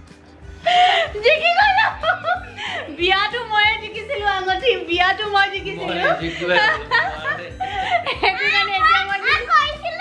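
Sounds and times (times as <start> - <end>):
music playing: 0.0 - 10.0
girl talking and laughing: 0.7 - 7.0, 7.7 - 10.0
woman talking and laughing: 0.7 - 10.0.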